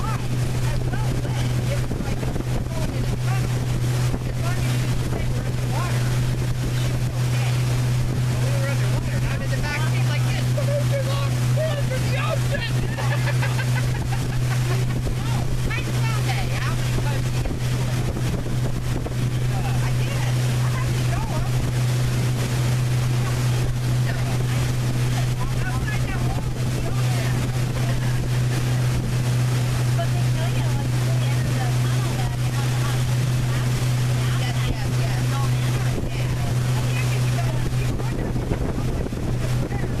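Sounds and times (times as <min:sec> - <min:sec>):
outboard motor droning: 0:00.0 - 0:40.0
water rushing past: 0:00.0 - 0:40.0
wind on microphone: 0:00.0 - 0:40.0.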